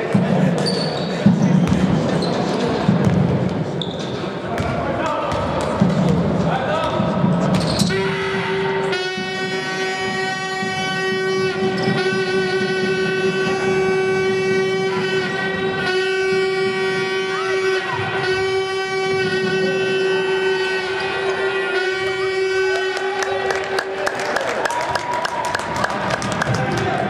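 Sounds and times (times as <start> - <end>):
basketball game sounds: 0.0 - 27.0
loud horn steady note: 7.9 - 23.9.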